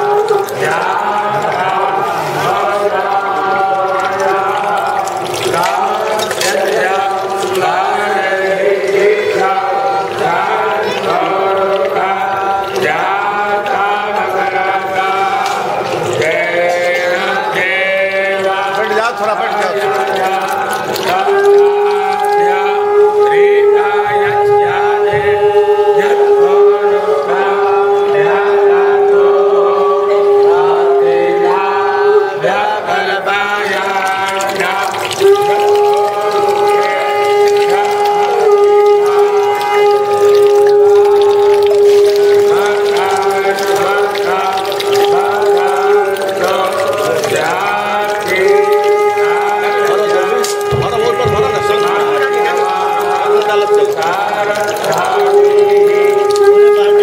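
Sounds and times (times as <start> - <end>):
voices chanting: 0.0 - 57.0.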